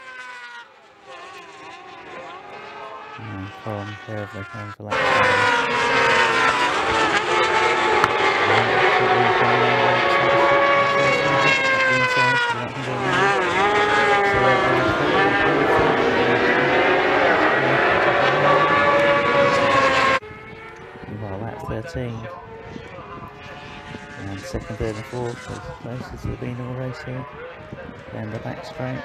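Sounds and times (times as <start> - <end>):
racing motorcycles passing: 0.0 - 29.0.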